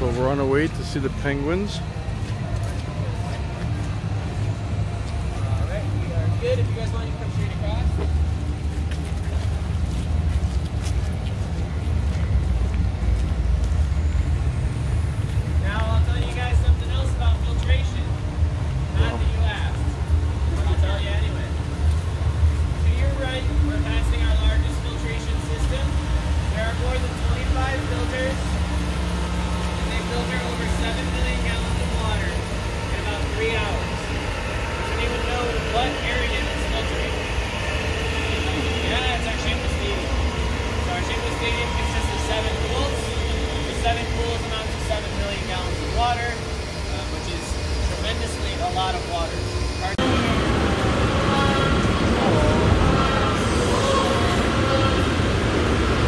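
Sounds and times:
people talking: 0.0 - 8.2, 15.4 - 18.2, 18.8 - 21.7, 22.7 - 56.0
water pumps humming: 0.0 - 56.0.

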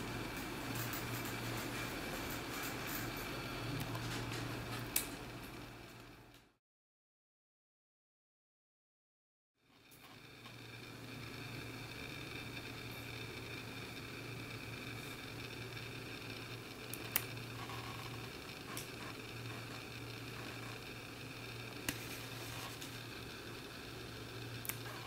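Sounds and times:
low hum and hiss: 0.0 - 6.6, 9.6 - 25.0.

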